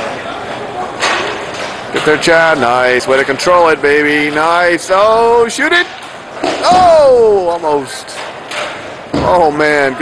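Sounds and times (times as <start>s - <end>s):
din of roller hockey play: 0.0s - 10.0s.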